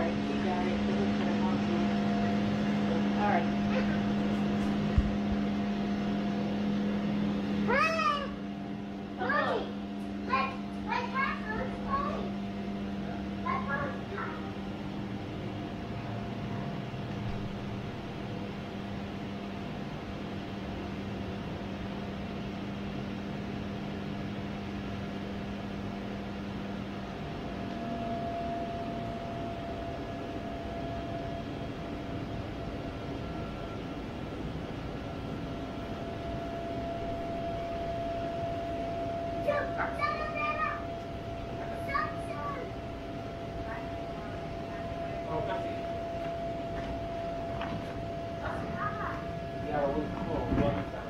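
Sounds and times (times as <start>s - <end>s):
electric blower humming: 0.0s - 51.0s.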